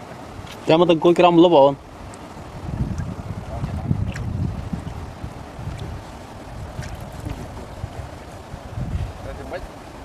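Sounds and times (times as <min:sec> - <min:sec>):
river water stirred by wading: 0:00.0 - 0:10.0
wind buffeting microphone: 0:01.8 - 0:10.0.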